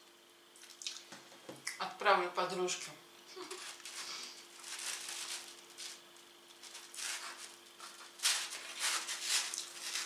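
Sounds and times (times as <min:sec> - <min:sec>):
faint steady hum: 0:00.0 - 0:10.0
person chewing pizza: 0:00.6 - 0:01.1.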